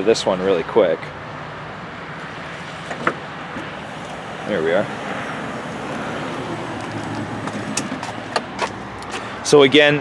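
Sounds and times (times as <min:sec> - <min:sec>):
vehicle hum and rumble: 0:00.0 - 0:10.0.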